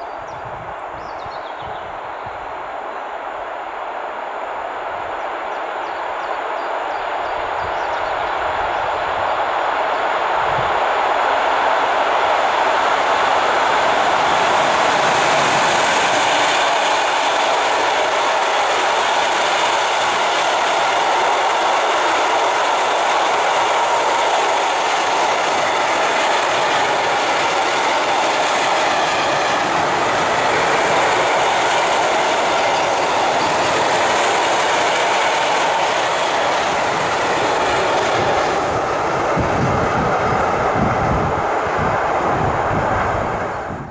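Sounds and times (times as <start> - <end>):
train wheels running on rails: 0.0 - 43.9.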